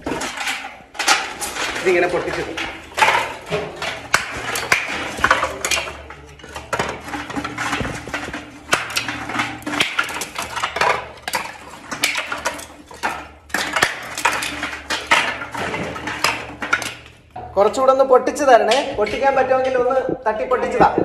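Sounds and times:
bricks clinking and knocking: 0.0 - 17.4.

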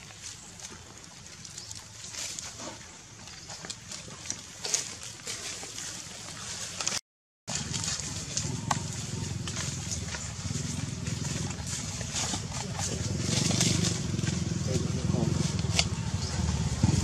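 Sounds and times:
dry leaves crackling and rustling: 0.0 - 17.0.

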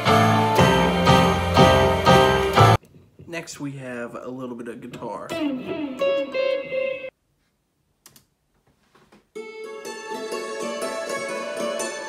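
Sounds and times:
electric guitar notes: 0.0 - 2.8, 5.3 - 7.1.

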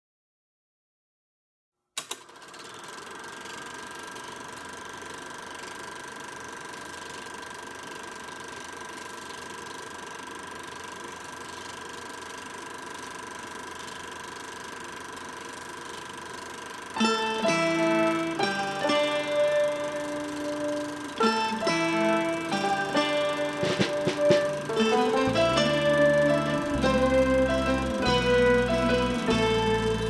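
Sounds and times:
film projector switch click: 2.0 - 2.4
film projector whirring: 2.0 - 30.0.

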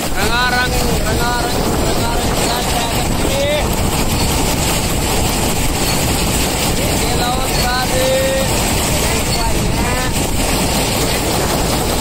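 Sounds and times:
combine harvester running: 0.0 - 12.0
grain pouring from auger: 0.0 - 12.0.

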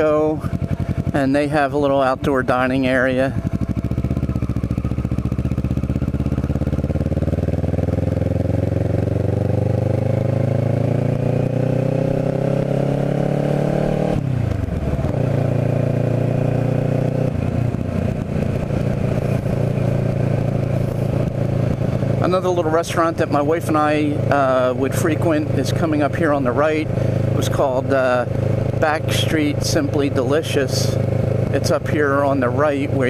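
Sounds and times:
motorcycle engine pulling away: 0.0 - 33.0.

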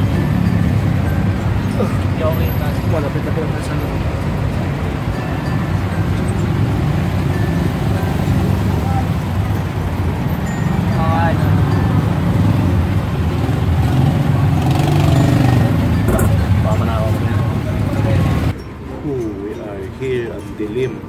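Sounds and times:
faint voices: 0.0 - 21.0.

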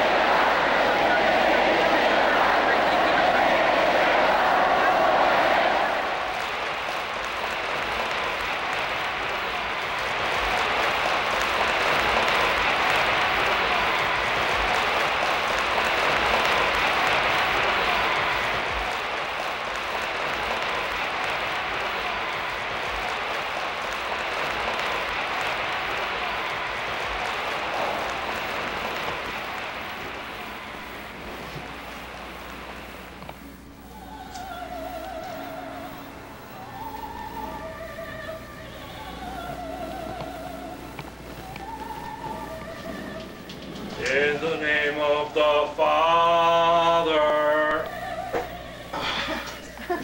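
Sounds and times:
crowd applauding and cheering: 0.0 - 50.0.

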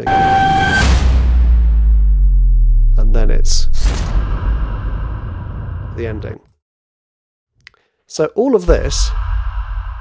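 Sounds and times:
low rumbling tail: 1.0 - 6.3, 8.7 - 10.0.

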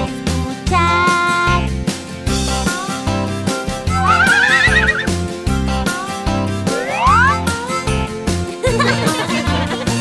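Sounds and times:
bouncy children's music: 0.0 - 10.0
horse whinnying: 3.9 - 5.2.

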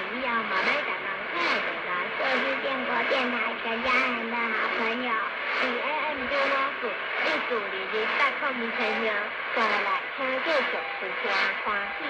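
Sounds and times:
muffled radio speech: 0.0 - 12.0
radio reception hiss: 0.0 - 12.0.

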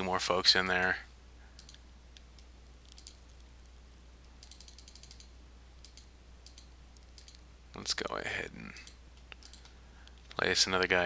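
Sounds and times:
low electrical hum: 0.0 - 11.0
mouse and keyboard clicks: 1.6 - 3.5, 4.3 - 7.4, 8.8 - 10.4.

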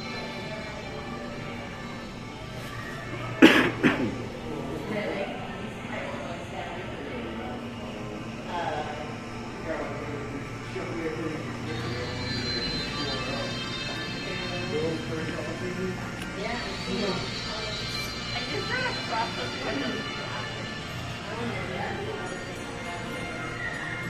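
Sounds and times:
indistinct voices: 0.0 - 24.0.

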